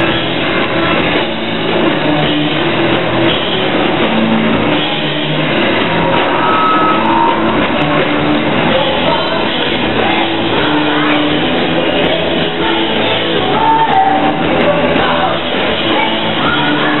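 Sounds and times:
drums: 0.0 - 17.0
electric guitar: 0.0 - 17.0.

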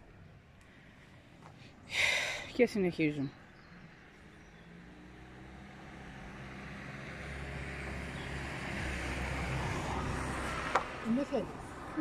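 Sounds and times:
vehicle engine approaching: 3.1 - 12.0.

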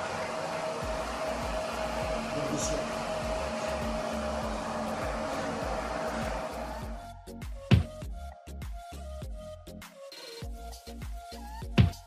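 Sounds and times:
music beat: 0.8 - 12.0.

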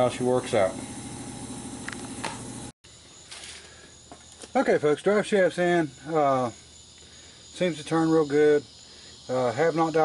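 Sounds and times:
faint steady tones: 3.8 - 10.0.

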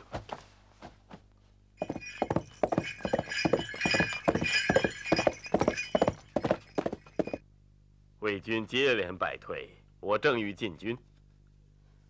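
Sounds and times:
horse hoofbeats galloping: 1.8 - 7.4.

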